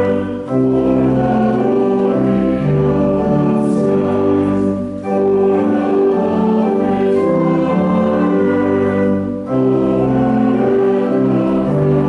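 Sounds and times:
group singing a hymn: 0:00.0 - 0:12.0
keyboard accompaniment: 0:00.0 - 0:12.0.

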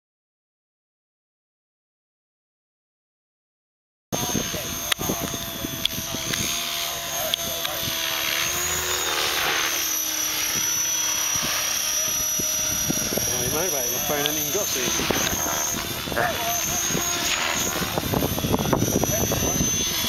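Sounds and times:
rc helicopter motor whine: 0:04.2 - 0:20.0.

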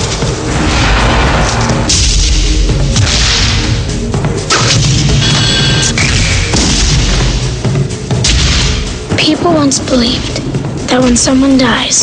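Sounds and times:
loud low-pitched score: 0:00.0 - 0:12.0.

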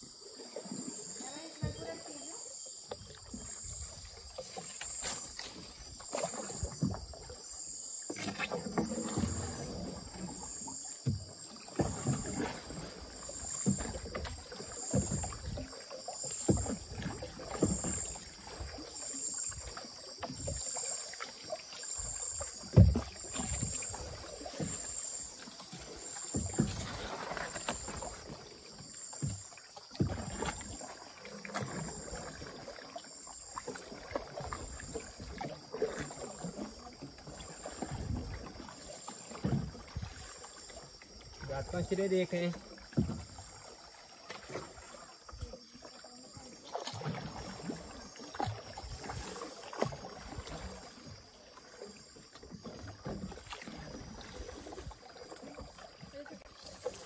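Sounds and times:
high-pitched insect call: 0:00.0 - 0:57.0
paddle strokes splashing: 0:00.0 - 0:57.0
paddle knocking on canoe hull: 0:01.3 - 0:02.1, 0:08.1 - 0:46.1.

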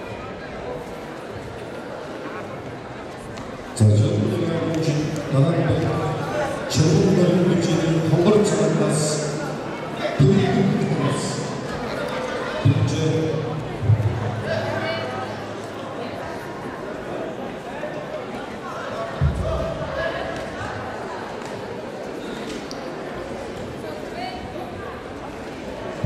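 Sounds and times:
voices echoing in a hall: 0:00.0 - 0:26.0.

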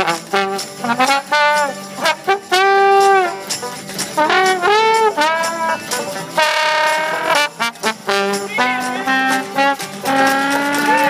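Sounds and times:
trombone and trumpet playing: 0:00.0 - 0:11.0.

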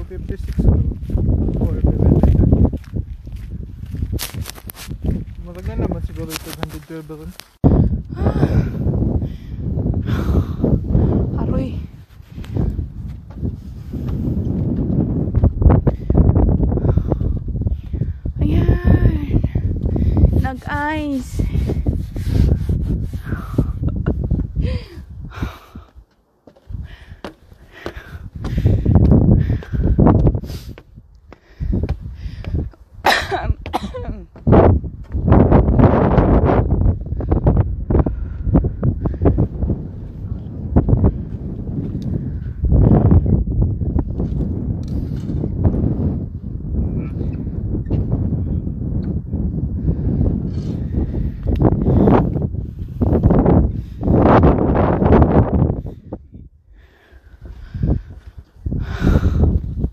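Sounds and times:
wind buffeting microphone: 0:00.0 - 0:59.9
footsteps on wooden steps: 0:12.4 - 0:18.2, 0:25.8 - 0:35.4, 0:57.2 - 0:58.6.

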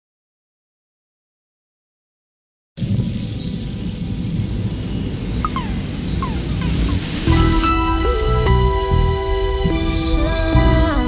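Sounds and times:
low rumbling ambience: 0:02.8 - 0:11.0
r and b music: 0:05.4 - 0:11.0.

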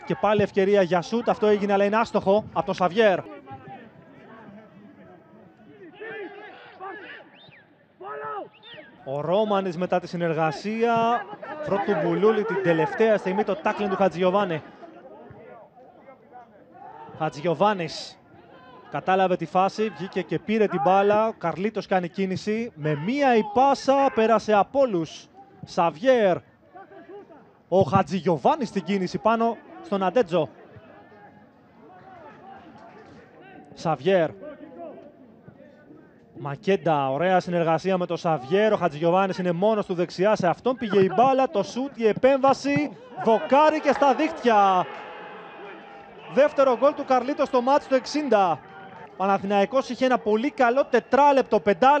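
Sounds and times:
footballers calling out: 0:00.0 - 0:35.0, 0:38.2 - 0:52.0
men shouting: 0:43.0 - 0:48.3.

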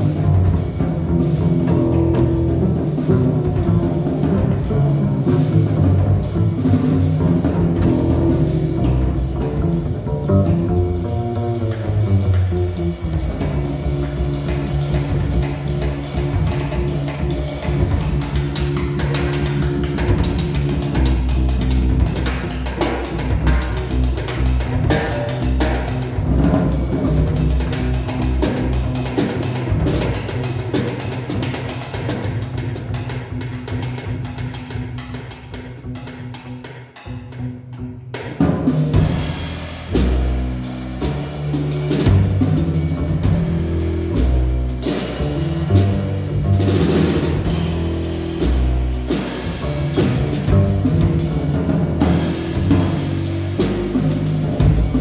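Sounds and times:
heavy low bass notes: 0:00.0 - 0:30.4, 0:38.9 - 0:55.0
drums: 0:00.0 - 0:55.0
live jazz ensemble playing: 0:00.0 - 0:55.0.

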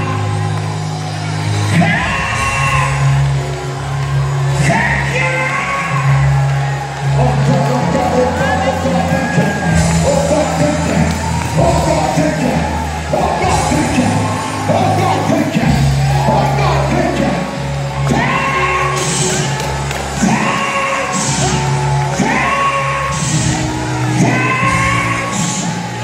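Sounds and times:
band with steady bass line: 0:00.0 - 0:26.0
congregation whooping: 0:00.0 - 0:26.0.

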